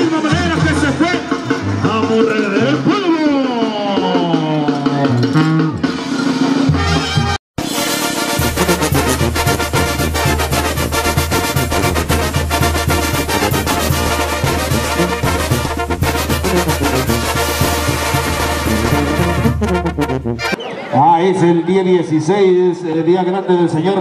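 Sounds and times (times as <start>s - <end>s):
brass band music with tuba: 0.0s - 20.8s.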